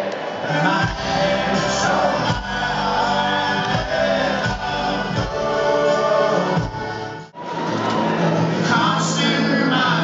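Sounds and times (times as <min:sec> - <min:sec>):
live music recording: 0:00.0 - 0:10.0.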